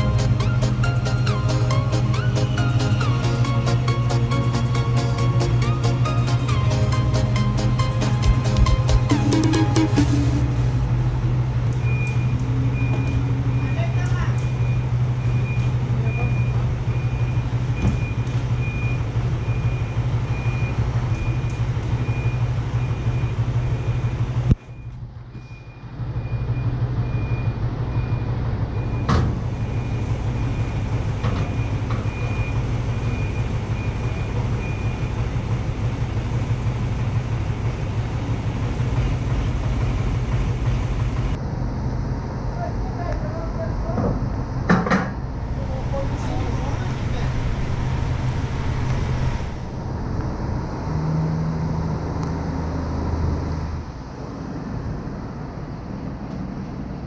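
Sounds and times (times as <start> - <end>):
heavy machine engine idling: 0.0 - 57.0
electronic warning beeps: 10.0 - 30.8.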